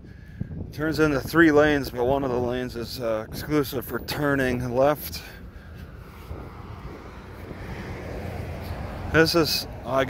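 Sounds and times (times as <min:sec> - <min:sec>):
congested road traffic: 0:00.0 - 0:10.0.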